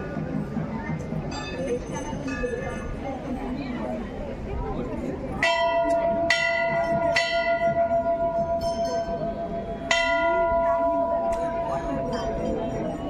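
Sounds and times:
metal bell ringing: 5.4s - 13.0s.

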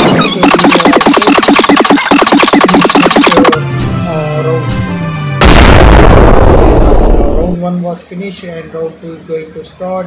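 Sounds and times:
electronic dance music: 0.0s - 3.6s.

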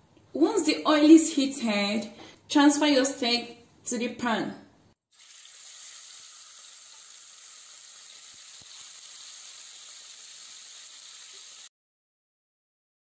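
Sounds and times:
steak sizzling in a pan: 5.1s - 11.7s.

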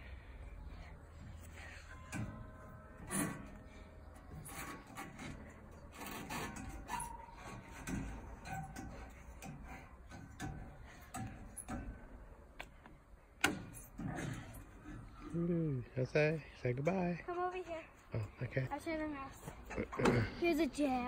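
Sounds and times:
clicks and knocks on monkey bars: 4.6s - 14.6s.

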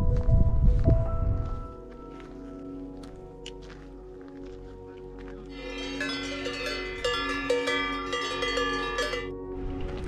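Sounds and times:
soft background music: 0.0s - 10.0s
cowbells clanking: 5.5s - 9.4s.

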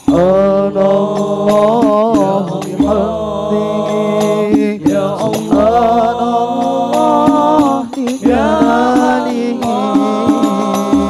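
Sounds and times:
frame drum strokes: 0.0s - 11.0s
man singing into a microphone: 0.0s - 11.0s.

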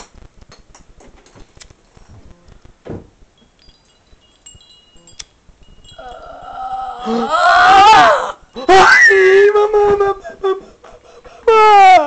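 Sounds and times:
person wailing scream: 6.0s - 10.6s, 11.4s - 12.0s.

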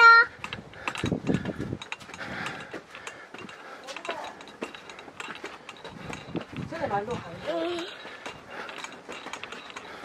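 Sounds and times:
rapid clicking and rattling: 0.3s - 10.0s.

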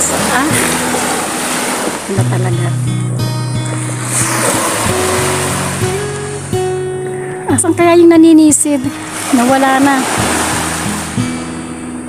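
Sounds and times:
wave washing up a beach: 0.0s - 2.6s, 3.6s - 7.5s, 8.8s - 12.0s
background music: 0.0s - 12.0s.

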